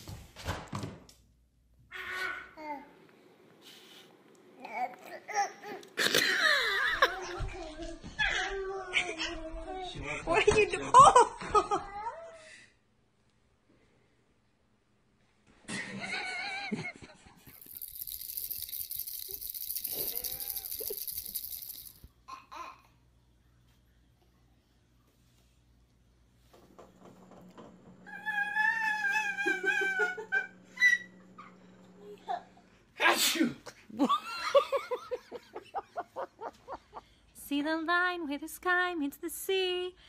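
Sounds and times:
toy rattle shaking: 0:17.4 - 0:22.1
baby sneezing: 0:33.0 - 0:33.6.

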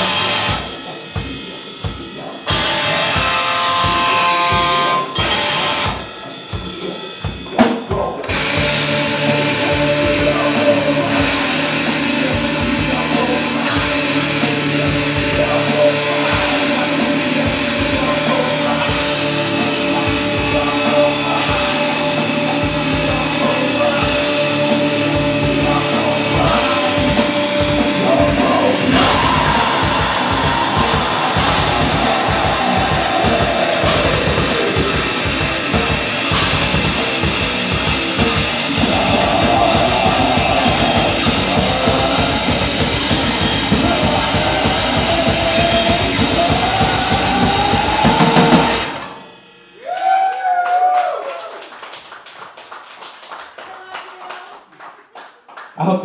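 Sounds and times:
metal band playing fast: 0:00.0 - 0:51.8
rapid kick drum: 0:25.2 - 0:48.9.

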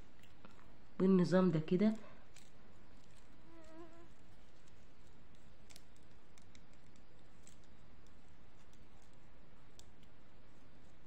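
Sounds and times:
background hiss: 0:00.0 - 0:11.0
plastic beads clicking: 0:02.3 - 0:10.2
insect buzzing: 0:03.3 - 0:04.3.

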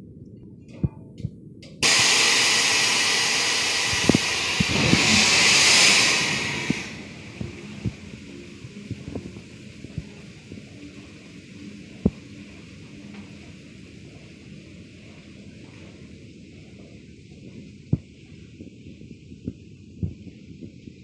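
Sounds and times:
coal rushing from hopper wagon: 0:01.8 - 0:12.8.

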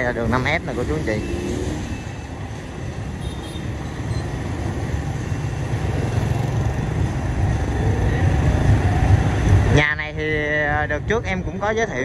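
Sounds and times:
street traffic passing: 0:00.0 - 0:12.0.

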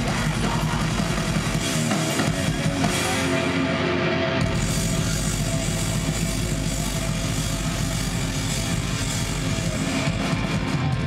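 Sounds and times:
distorted electric guitar: 0:00.0 - 0:11.0
live punk rock: 0:00.0 - 0:11.0.

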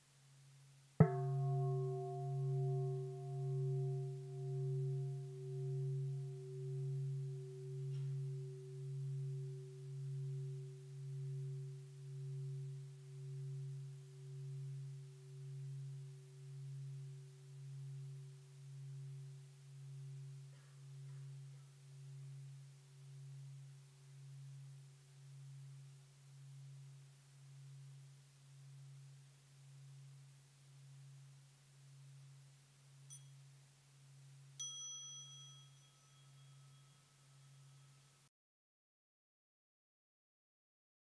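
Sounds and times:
large bowl bell ringing: 0:01.0 - 0:31.2, 0:33.1 - 0:33.5, 0:34.4 - 0:38.3.

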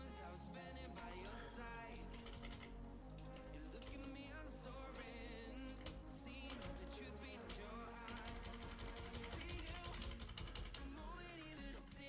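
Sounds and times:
faint music with singing: 0:00.0 - 0:12.0
keyboard typing clicks: 0:02.1 - 0:04.2, 0:05.8 - 0:06.9, 0:07.5 - 0:12.0.

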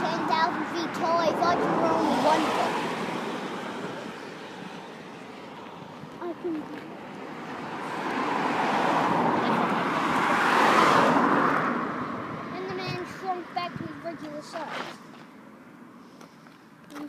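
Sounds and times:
car driving past: 0:07.0 - 0:12.6.

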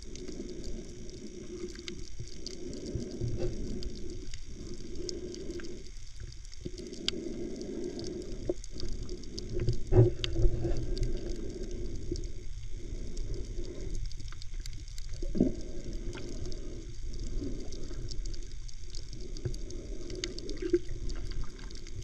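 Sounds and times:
faint crackling clicks: 0:00.0 - 0:22.0
underwater low rumble and hum: 0:00.0 - 0:22.0.

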